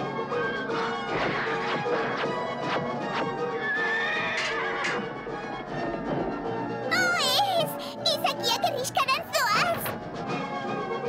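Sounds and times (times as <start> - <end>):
cartoon battle music: 0.0 - 6.2, 6.9 - 10.0
horse neighing: 3.6 - 5.1
hoofbeats: 3.7 - 5.2.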